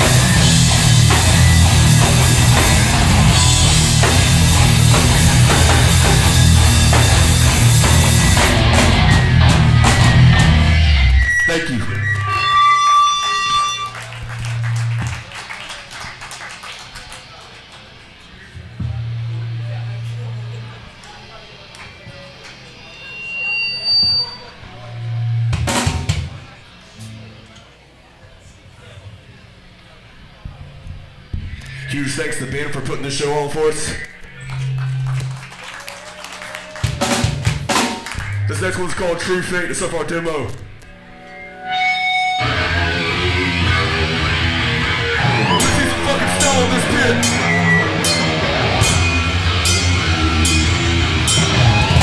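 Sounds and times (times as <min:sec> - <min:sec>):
amp noise: 0:00.0 - 0:15.3, 0:17.2 - 0:35.6, 0:37.0 - 0:52.0
high guitar amp feedback tone: 0:00.0 - 0:15.4, 0:18.2 - 0:27.6, 0:29.0 - 0:36.0, 0:37.7 - 0:52.0.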